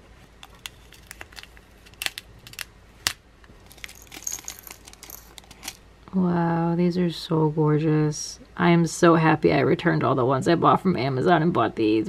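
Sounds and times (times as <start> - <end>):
plastic bag crinkling: 0.3 - 2.7, 3.5 - 5.8
small stones clattering and tinkling: 0.4 - 2.7, 3.6 - 5.8.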